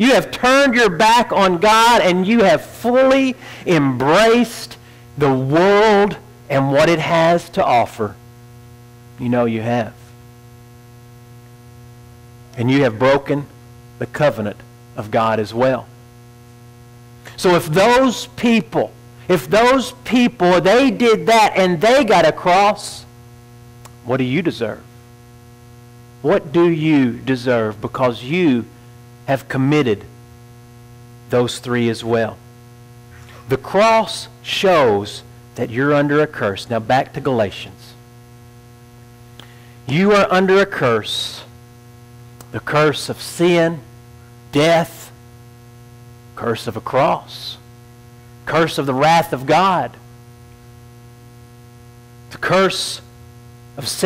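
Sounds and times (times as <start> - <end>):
man talking: 0.0 - 8.2, 9.2 - 10.0, 12.6 - 15.9, 17.3 - 23.1, 24.0 - 24.9, 26.2 - 28.7, 29.3 - 30.1, 31.3 - 32.4, 33.3 - 38.0, 39.9 - 41.5, 42.5 - 43.8, 44.6 - 45.1, 46.4 - 47.6, 48.5 - 50.0, 52.3 - 53.1, 53.8 - 54.0
electrical mains hum: 0.0 - 54.0.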